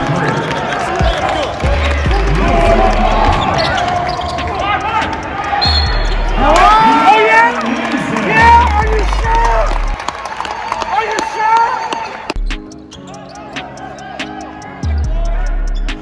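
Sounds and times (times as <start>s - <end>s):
players shouting: 0.0s - 12.4s, 13.0s - 15.8s
music with deep bass: 1.0s - 3.6s, 12.4s - 16.0s.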